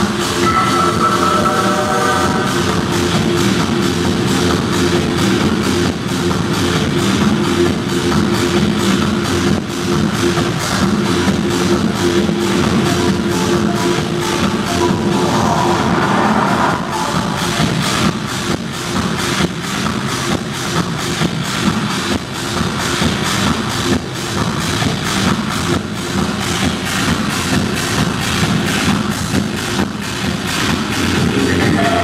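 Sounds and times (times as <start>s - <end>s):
steady kick drum: 0.0s - 15.6s, 16.8s - 32.0s
loud techno music: 0.0s - 32.0s.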